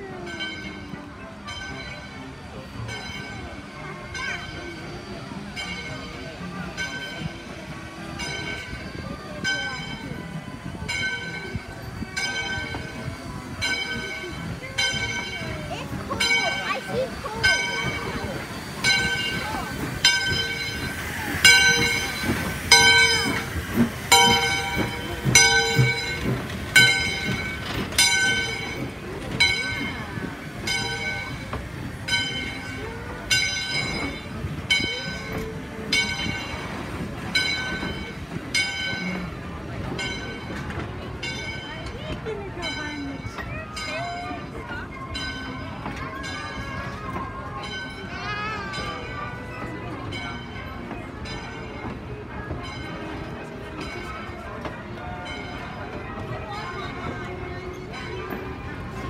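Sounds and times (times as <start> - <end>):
locomotive bell ringing: 0.0 - 59.0
train coaches rumbling and clattering: 0.0 - 59.0.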